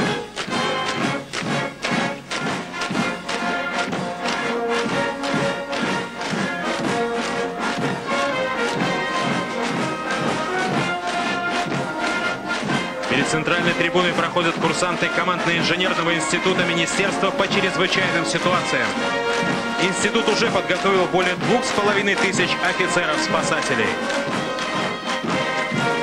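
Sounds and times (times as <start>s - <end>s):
brass band playing a march: 0.0s - 26.0s.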